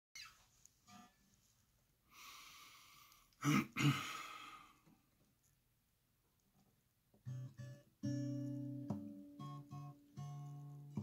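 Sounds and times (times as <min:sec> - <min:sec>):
soft squeak: 0:00.2 - 0:00.5.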